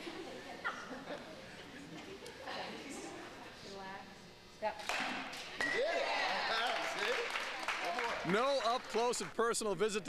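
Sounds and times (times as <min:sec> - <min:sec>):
excited voices: 0:05.7 - 0:09.0.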